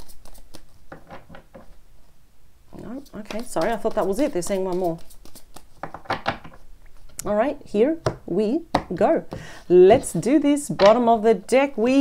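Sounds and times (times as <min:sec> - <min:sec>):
cards being shuffled: 0:00.0 - 0:01.1, 0:02.8 - 0:07.2.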